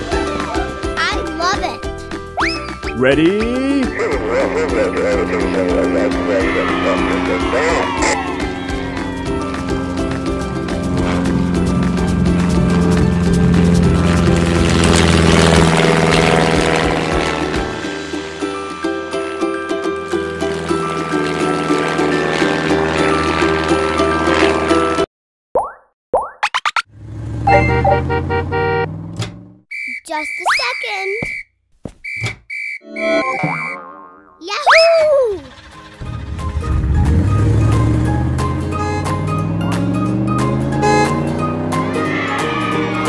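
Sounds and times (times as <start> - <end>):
cheerful cartoon music: 0.0 - 14.0, 17.5 - 25.0, 32.8 - 43.0
rising and falling pitch glides: 4.2 - 17.8, 27.4 - 28.2, 32.8 - 35.6, 36.6 - 43.0
comic boings: 32.8 - 35.5.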